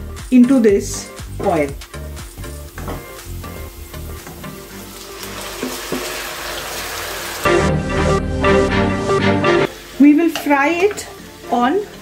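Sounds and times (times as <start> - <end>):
background music: 0.0 - 12.0
chicken sizzling in hot oil: 1.8 - 7.6, 9.7 - 12.0.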